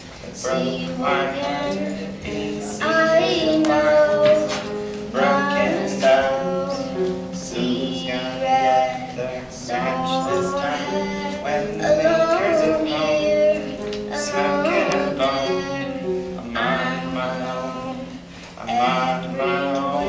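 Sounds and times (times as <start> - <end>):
people singing: 0.0 - 20.0.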